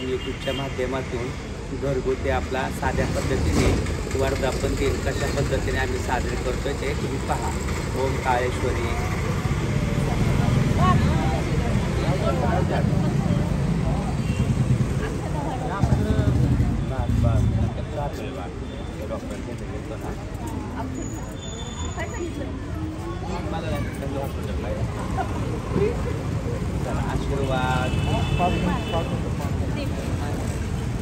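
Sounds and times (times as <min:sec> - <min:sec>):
people talking nearby: 0:00.0 - 0:31.0.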